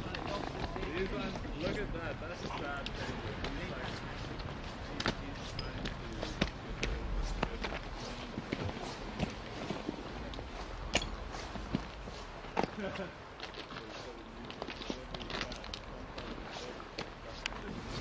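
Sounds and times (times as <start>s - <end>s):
faint background voices: 0.0s - 18.0s
footsteps on loose rock: 0.0s - 18.0s
steady outdoor hiss: 0.0s - 18.0s.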